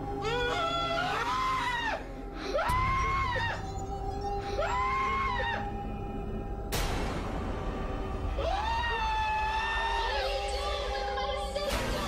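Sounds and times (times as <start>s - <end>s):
eerie music drone: 0.0s - 11.7s.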